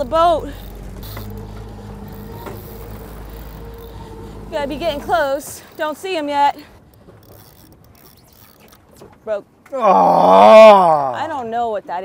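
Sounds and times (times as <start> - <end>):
outboard motor running: 0.0 - 9.0.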